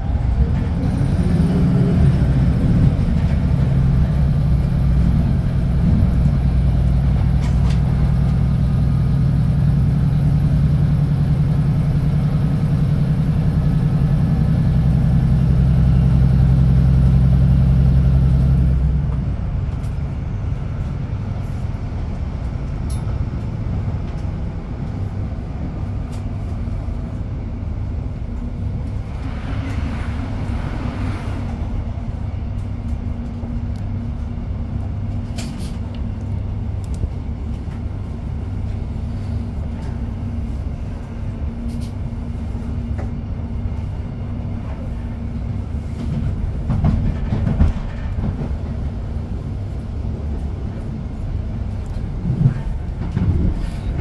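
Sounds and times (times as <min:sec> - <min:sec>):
diesel engine droning: 0:00.0 - 0:54.0
train wheels rumbling on rails: 0:00.0 - 0:54.0.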